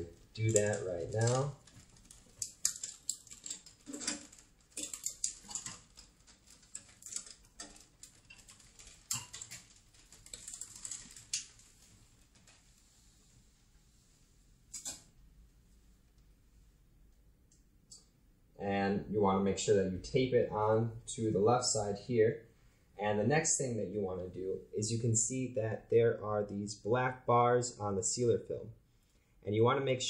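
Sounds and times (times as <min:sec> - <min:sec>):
plastic film rustling: 0:00.0 - 0:15.1.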